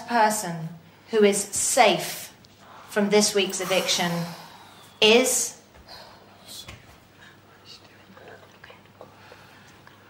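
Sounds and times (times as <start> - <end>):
breathing: 2.6 - 5.0, 5.8 - 6.6, 9.1 - 10.0
faint whispering: 5.9 - 9.5.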